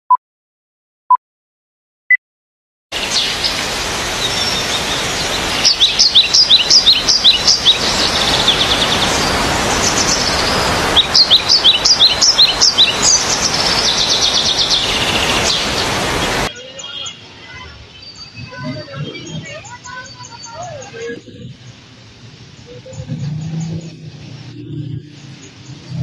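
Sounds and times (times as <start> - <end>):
birds chirping: 2.9 - 26.0
background hiss: 3.0 - 16.5.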